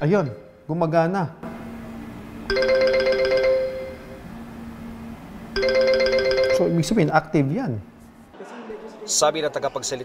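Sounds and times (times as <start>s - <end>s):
smartphone ringtone chiming melody: 2.5s - 4.2s, 5.6s - 7.0s.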